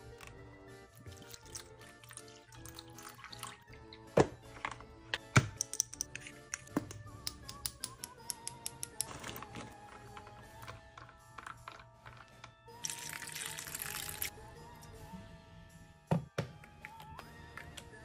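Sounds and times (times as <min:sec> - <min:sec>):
background music: 0:00.0 - 0:18.0
water pouring into ice tray: 0:00.9 - 0:04.2, 0:12.8 - 0:14.3.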